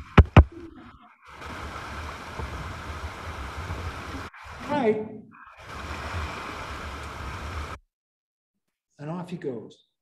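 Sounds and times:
whitewater rushing: 1.2 - 7.8.

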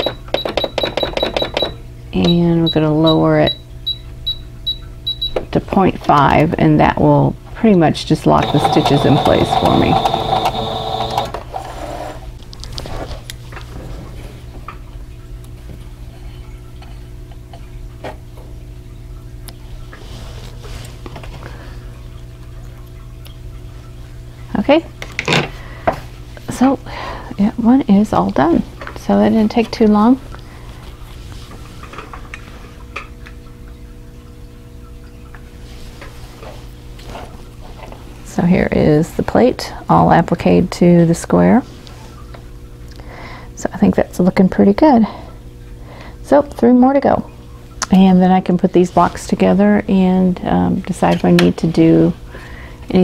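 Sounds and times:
sewing machine keypad beeps: 0.0 - 2.4, 8.4 - 11.3
steady low hum: 0.0 - 25.0.

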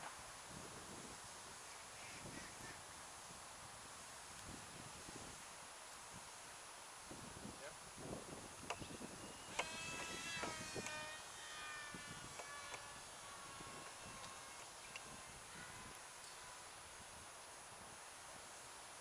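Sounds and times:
small electric motor buzzing: 8.0 - 17.8
sharp clicks: 9.5 - 11.0, 12.3 - 12.9.

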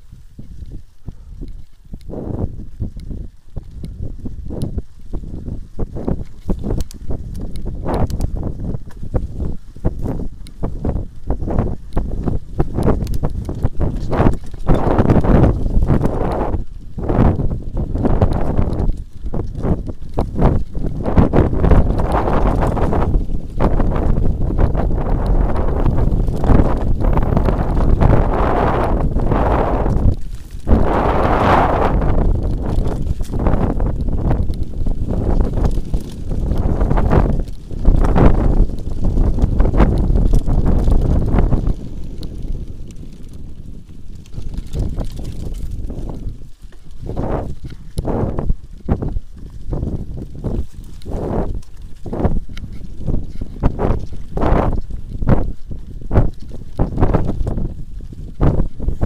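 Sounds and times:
bike frame rattling over bumps: 2.5 - 59.0.

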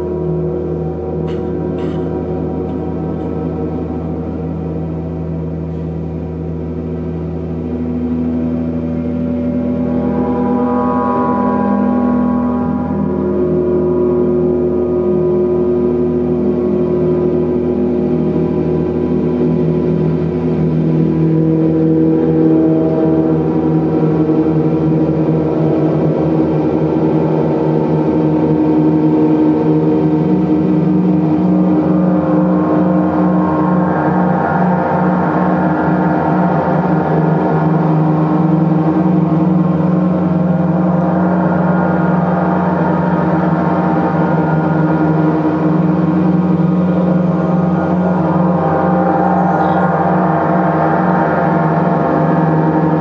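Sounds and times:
large gongs ringing: 0.0 - 53.0.

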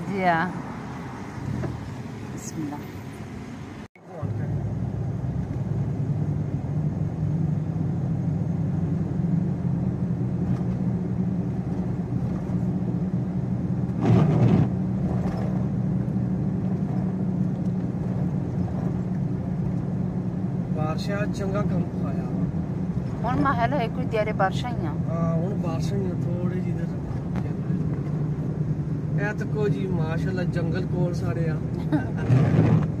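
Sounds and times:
car engine and road drone: 0.0 - 33.0.

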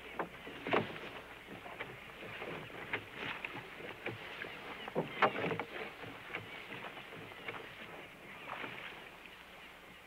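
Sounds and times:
knocks and clatter on boat: 0.0 - 9.2
water sloshing around boat: 0.0 - 10.0.

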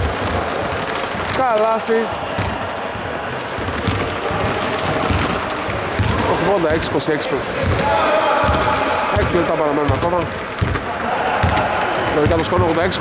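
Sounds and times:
basketball bouncing on hardwood: 0.0 - 1.4, 2.4 - 2.6, 3.6 - 6.3, 7.6 - 8.8, 9.8 - 13.0.

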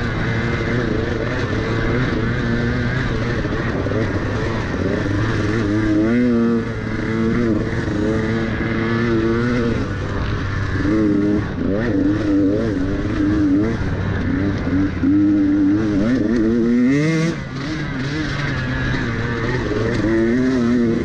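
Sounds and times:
dirt bike engine revving: 0.0 - 21.0
steady rushing noise: 0.0 - 21.0.

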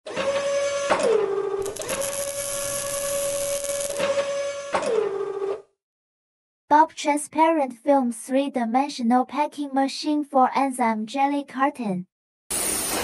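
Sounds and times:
mechanical clicks: 1.6 - 2.9
servo motor whirring: 1.6 - 4.2.

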